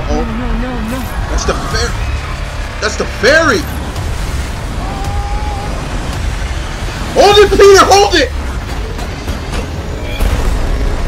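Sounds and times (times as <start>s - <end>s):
deep rumble: 0.0s - 11.0s
noisy wash: 0.0s - 11.0s.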